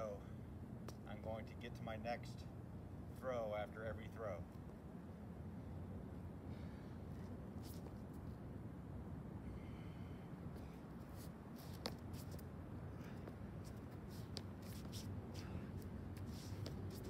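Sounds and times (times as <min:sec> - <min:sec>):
low background rumble: 0:00.0 - 0:17.0
shoes scraping on concrete: 0:07.2 - 0:08.3, 0:11.1 - 0:17.0.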